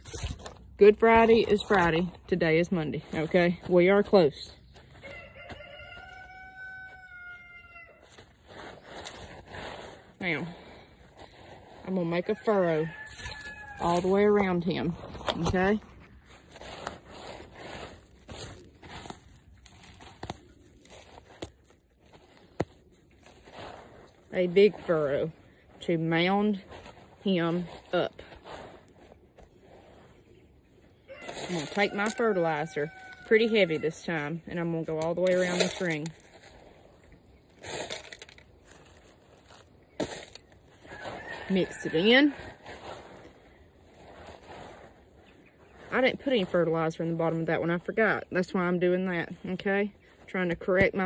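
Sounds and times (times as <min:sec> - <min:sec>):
trowel scraping soil: 0:00.0 - 0:04.4, 0:08.0 - 0:22.5, 0:23.2 - 0:30.3, 0:31.2 - 0:51.0
fertilizer scattering on soil: 0:31.2 - 0:45.0.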